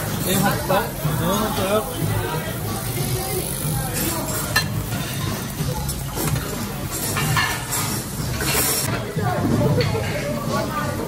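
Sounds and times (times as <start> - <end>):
meat sizzling on a grill: 0.0 - 8.9
restaurant chatter: 0.0 - 11.0
metal tongs clinking: 3.9 - 8.9.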